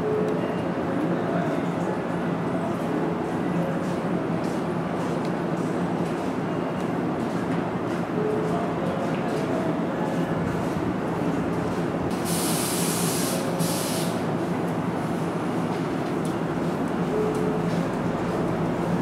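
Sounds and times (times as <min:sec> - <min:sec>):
compressed-air hiss: 0:12.2 - 0:14.2.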